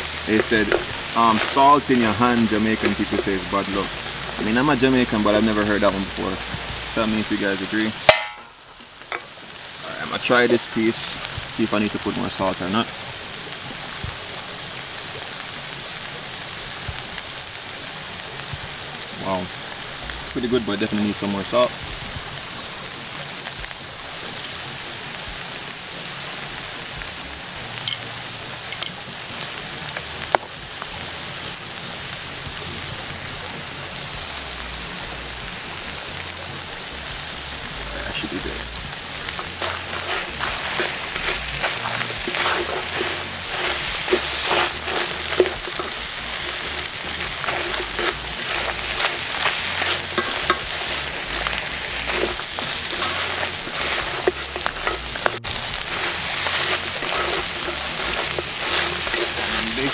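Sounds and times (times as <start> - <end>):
wooden spatula scraping a pan: 0.0 - 6.1, 38.9 - 59.9
crawfish sizzling in a skillet: 0.0 - 59.9.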